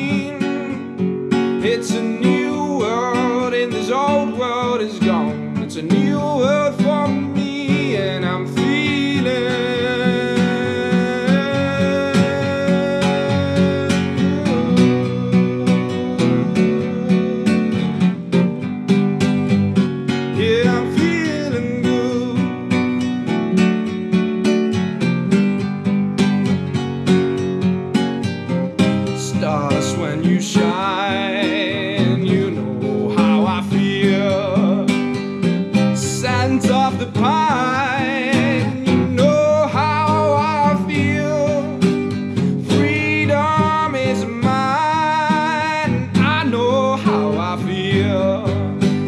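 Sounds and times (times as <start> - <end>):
man singing: 0.0 - 19.0, 19.8 - 23.9, 28.8 - 49.0
acoustic guitar strummed: 0.0 - 49.0.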